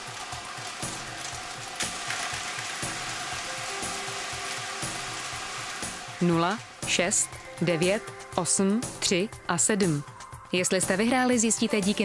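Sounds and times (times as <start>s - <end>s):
balls rattling in spinning drums: 0.0s - 8.0s.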